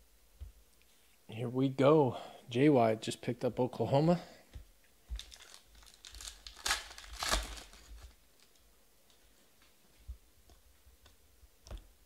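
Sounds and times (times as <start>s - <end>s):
foil wrapper crinkling: 5.2s - 8.6s
foil wrapper ripping: 5.2s - 8.6s.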